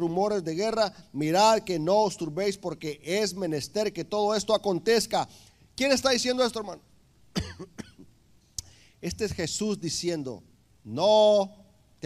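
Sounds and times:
man clearing his throat: 7.3 - 8.1.

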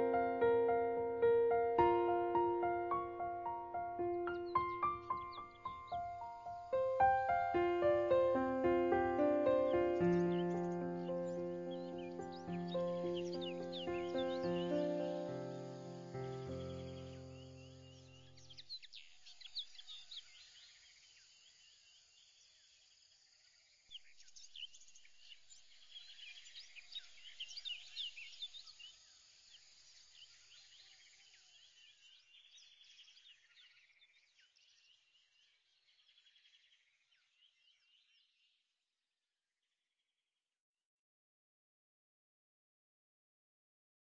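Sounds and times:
music track: 0.0 - 17.4
faint birdsong chirps: 0.0 - 38.7.

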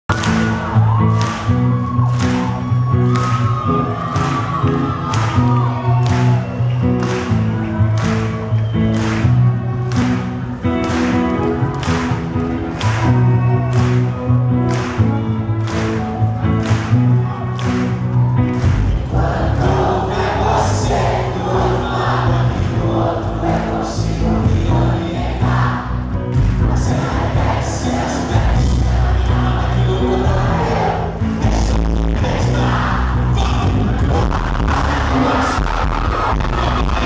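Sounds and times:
live band playing: 1.7 - 37.0
man singing: 19.1 - 25.8, 26.6 - 37.0.

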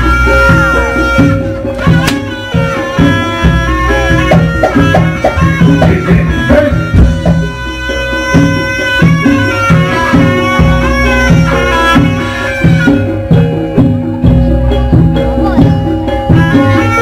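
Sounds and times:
gamelan percussion: 0.0 - 17.0
reed shawm melody: 0.0 - 17.0.

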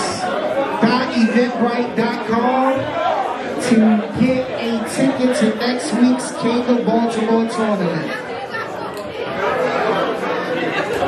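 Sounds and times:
crowd chatter in a large hall: 0.0 - 11.0.

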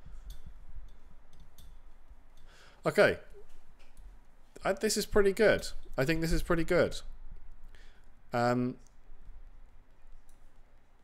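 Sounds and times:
man speaking: 2.8 - 3.4, 4.6 - 7.1, 8.3 - 8.8.

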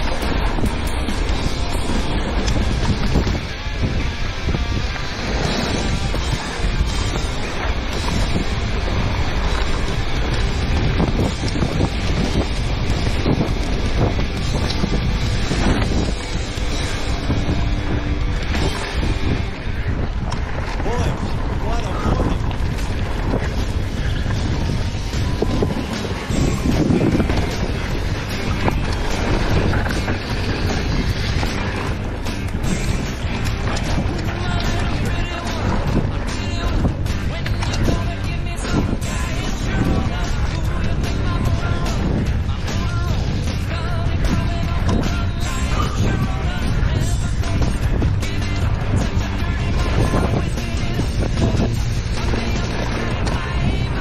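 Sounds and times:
bike rattling over rough ground: 0.0 - 54.0
wind on camera microphone: 0.0 - 54.0.

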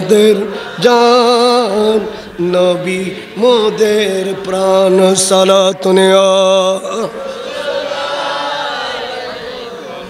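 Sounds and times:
men chanting together: 2.7 - 10.0.

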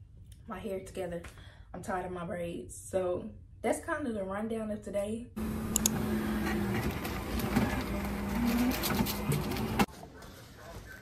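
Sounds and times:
coffee machine humming: 5.4 - 9.9.

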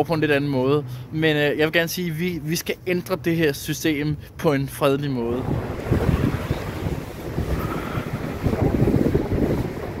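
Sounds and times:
wind buffeting microphone: 5.1 - 10.0.

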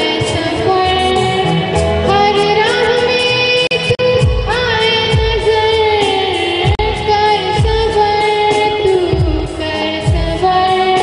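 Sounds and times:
electronic keyboard: 0.0 - 11.0
woman singing into microphone: 0.0 - 11.0
low drum beats: 0.2 - 10.7.

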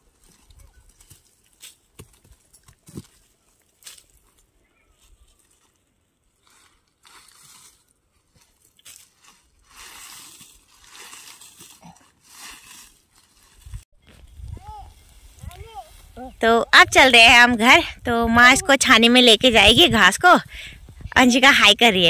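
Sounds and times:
rustling and scraping of leaves: 0.0 - 16.4
faint high voice: 14.5 - 16.4.

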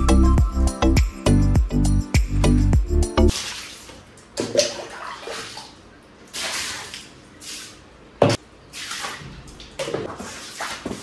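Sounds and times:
water splashing on tiled floor: 3.3 - 11.0.

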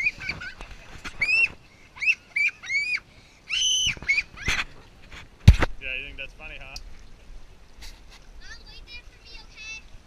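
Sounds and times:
child squealing laughter: 0.0 - 0.6, 1.2 - 4.6.

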